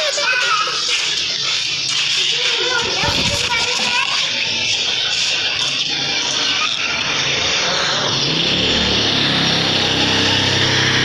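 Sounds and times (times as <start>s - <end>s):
children's voices chattering: 0.0s - 7.6s
steady background noise: 0.0s - 11.0s.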